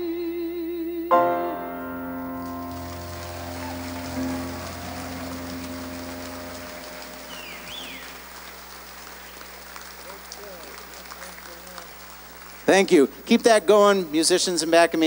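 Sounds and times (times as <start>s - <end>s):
band closing chord: 1.1s - 8.2s
audience applause: 2.3s - 13.0s.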